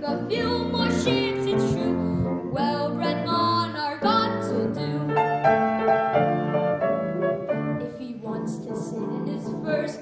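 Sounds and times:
grand piano accompaniment: 0:00.0 - 0:10.0.

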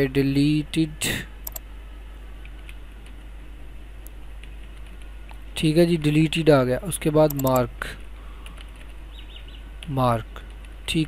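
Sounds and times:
low electrical hum with hiss: 0:00.0 - 0:11.0
computer keyboard keystrokes: 0:07.2 - 0:07.7, 0:08.4 - 0:09.0.

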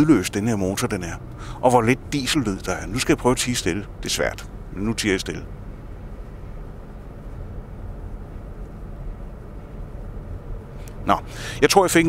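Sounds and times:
car interior engine and road hum: 0:00.0 - 0:12.0.

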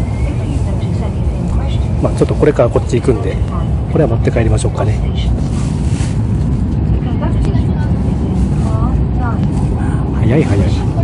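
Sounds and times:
train low rumble from inside: 0:00.0 - 0:11.0.

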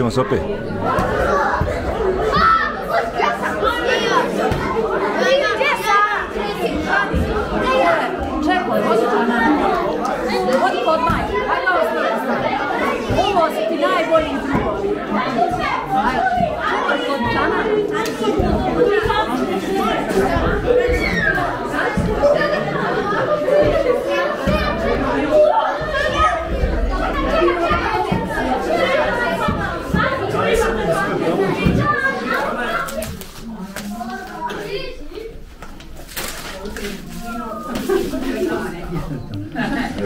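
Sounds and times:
children chattering: 0:00.0 - 0:40.0.

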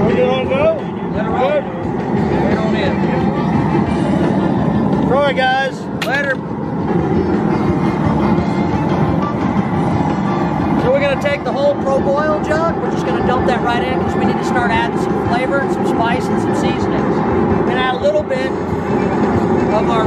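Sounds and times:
propane burner roaring: 0:00.0 - 0:20.0.

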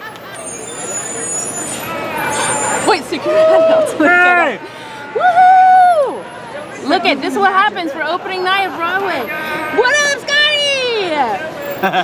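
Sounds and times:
crowd chatter: 0:00.0 - 0:12.0
traffic noise: 0:00.0 - 0:12.0.

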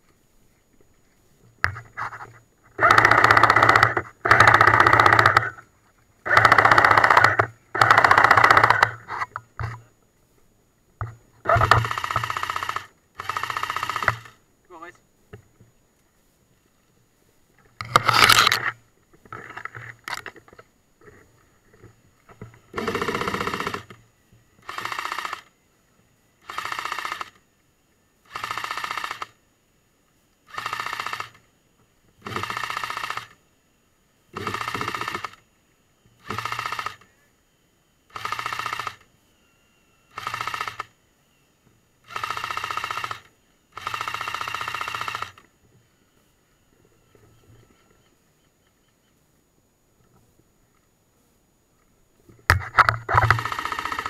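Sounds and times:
airsoft gun firing bursts: 0:02.8 - 0:05.6, 0:06.2 - 0:09.0, 0:11.5 - 0:14.4, 0:22.7 - 0:23.9, 0:24.6 - 0:25.5, 0:26.4 - 0:27.4, 0:28.3 - 0:29.4, 0:30.5 - 0:31.4, 0:32.2 - 0:33.4, 0:34.4 - 0:35.4, 0:36.2 - 0:37.0, 0:38.1 - 0:39.0, 0:40.1 - 0:40.9, 0:42.0 - 0:45.4, 0:53.1 - 0:54.0.

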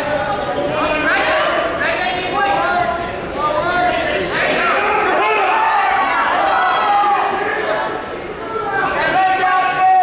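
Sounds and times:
people shouting in a gym hall: 0:00.0 - 0:10.0.

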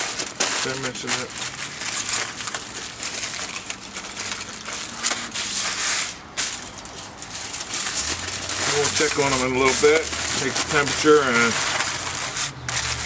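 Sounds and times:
aluminium foil crinkling: 0:00.0 - 0:13.0.

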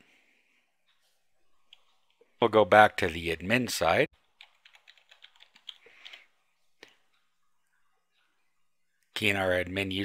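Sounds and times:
keyboard typing: 0:01.6 - 0:02.3, 0:04.2 - 0:07.2.

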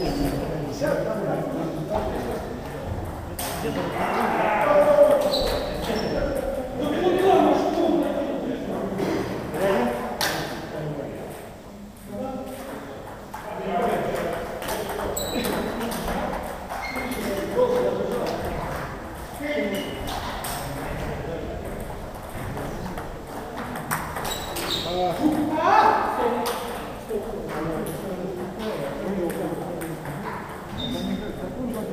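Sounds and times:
players' voices: 0:00.0 - 0:31.9
table tennis balls clicking: 0:12.4 - 0:20.7, 0:21.6 - 0:25.5, 0:26.4 - 0:31.9.

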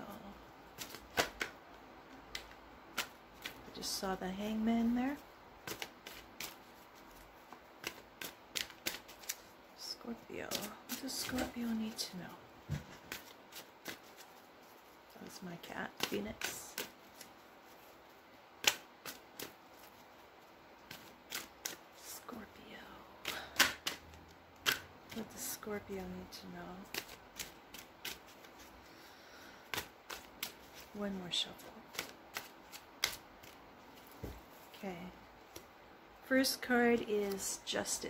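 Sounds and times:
cards being shuffled: 0:00.8 - 0:01.6, 0:02.2 - 0:04.0, 0:05.6 - 0:22.3, 0:23.2 - 0:34.8.

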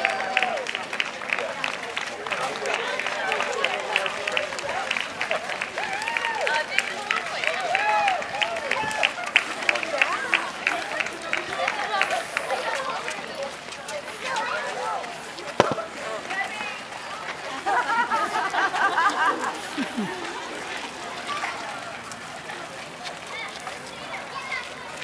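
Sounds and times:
crowd chatter: 0:00.0 - 0:25.0
quick sharp taps: 0:15.6 - 0:15.9.

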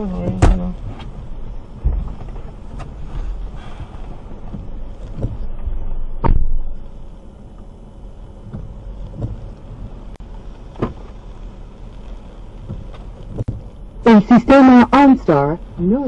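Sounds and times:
car cabin rumble: 0:00.0 - 0:16.0
dull knocks: 0:04.4 - 0:05.5, 0:08.5 - 0:09.4.

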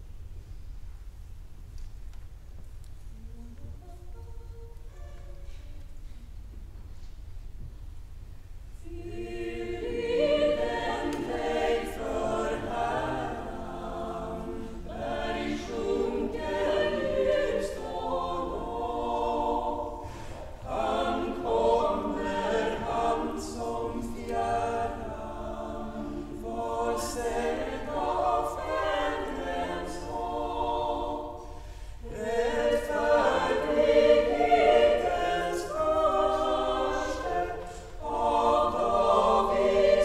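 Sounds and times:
choir singing unaccompanied: 0:08.8 - 0:40.0.

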